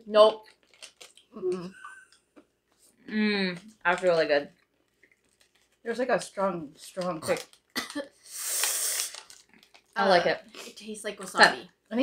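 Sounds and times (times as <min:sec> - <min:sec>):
person hissing through teeth: 0:08.2 - 0:09.3.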